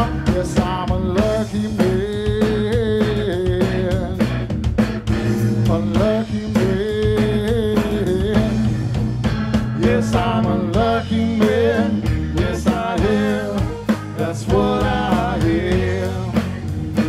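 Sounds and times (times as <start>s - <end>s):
drum kit: 0.0s - 17.0s
electric bass: 0.0s - 17.0s
electric guitar lead: 0.0s - 17.0s.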